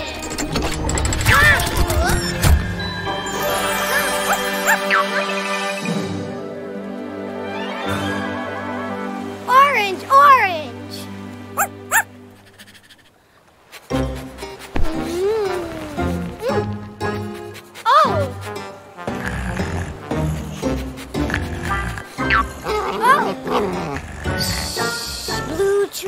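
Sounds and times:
background music: 0.0 - 12.7, 13.6 - 26.0
cartoon puppy yapping: 4.3 - 5.2, 11.6 - 13.0, 21.7 - 23.7.

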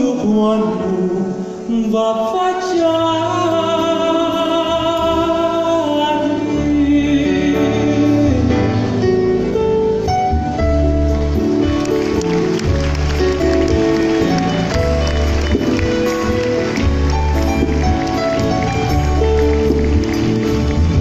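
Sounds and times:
live band music: 0.0 - 21.0.

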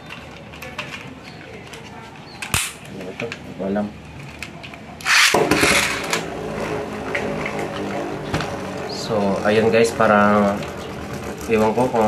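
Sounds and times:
spinning top whirring: 5.0 - 12.0.

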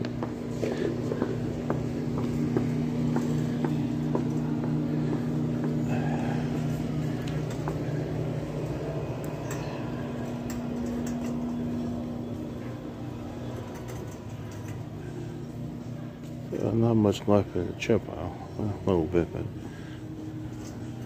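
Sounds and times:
shopping cart wheels rumbling: 0.0 - 18.3
steady low hum: 0.0 - 21.0.

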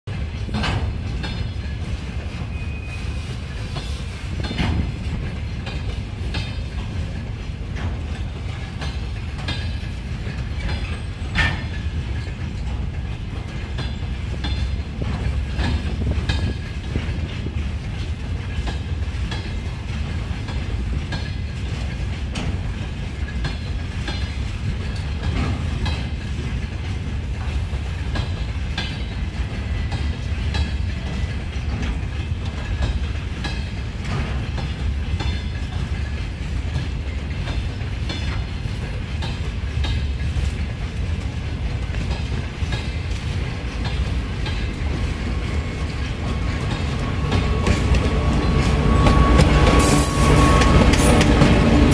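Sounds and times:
train wheels rumbling on rail: 0.0 - 51.9
wheels clicking over rail joints: 0.1 - 51.9.

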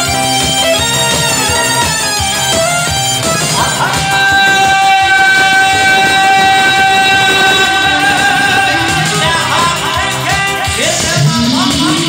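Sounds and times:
amplified keyboard: 0.0 - 12.0
man singing into a microphone: 3.6 - 12.0.

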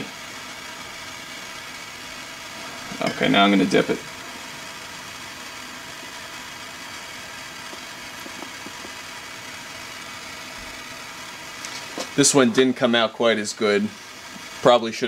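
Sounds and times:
propane torch hissing: 0.0 - 15.0.

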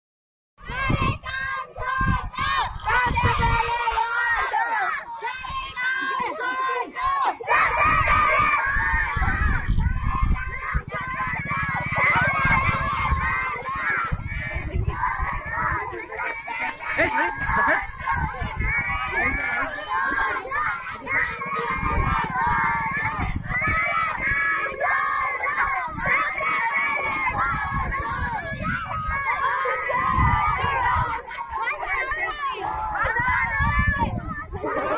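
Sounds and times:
children shouting a slogan: 0.6 - 34.9.

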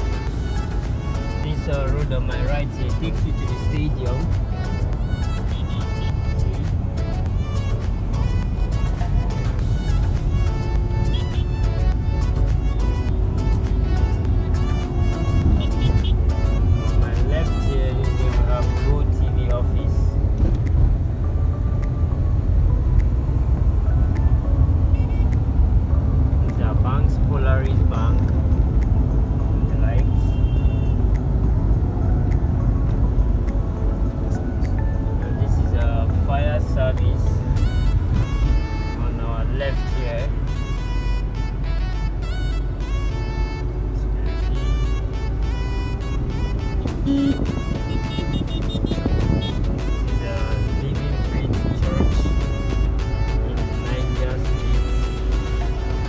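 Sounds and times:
car driving rumble from inside: 11.8 - 18.9, 41.6 - 50.0
music with singing: 37.0 - 56.0.

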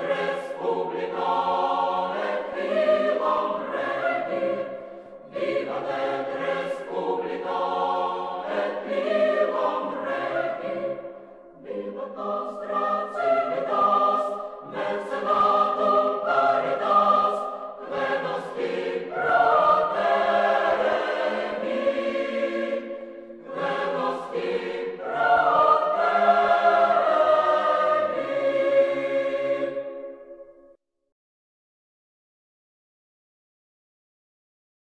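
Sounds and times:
choir singing sustained chords: 0.0 - 30.8.

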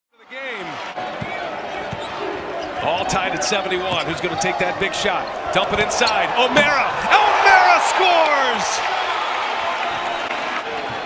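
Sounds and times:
arena crowd noise: 0.1 - 11.0.

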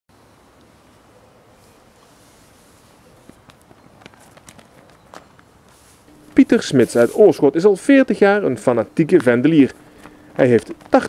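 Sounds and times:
background hiss: 0.1 - 11.0
faint footsteps: 1.6 - 11.0.

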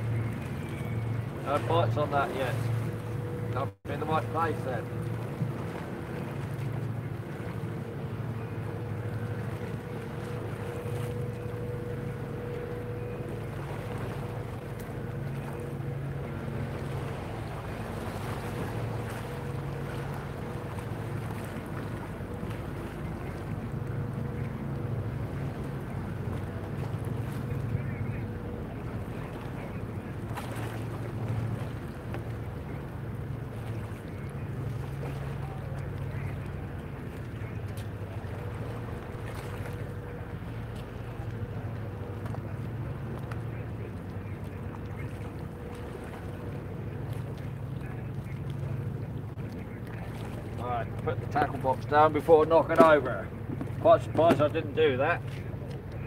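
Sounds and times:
faint whine: 0.0 - 56.0
ferry engines droning: 0.0 - 56.0.

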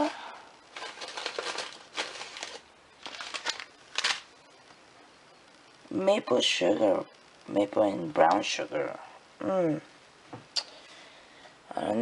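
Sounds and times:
paper packets rustling: 0.7 - 4.3.

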